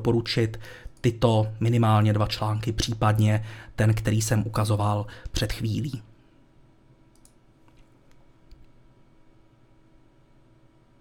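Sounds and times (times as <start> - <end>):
faint computer clicks: 7.1 - 8.8.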